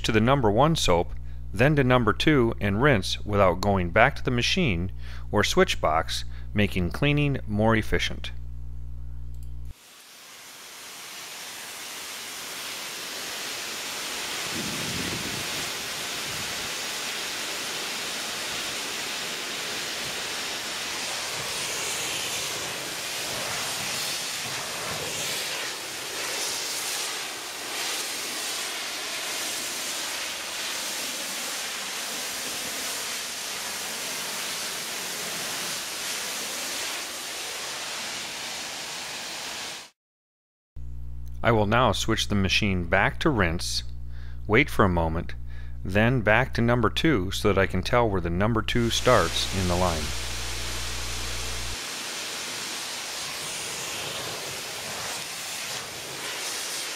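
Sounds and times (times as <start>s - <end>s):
pressure washer spray hissing: 9.7s - 39.9s, 48.8s - 56.9s.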